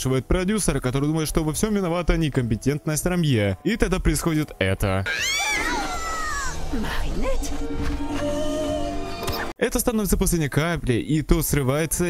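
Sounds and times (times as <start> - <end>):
cartoon girl screaming: 5.1 - 6.6.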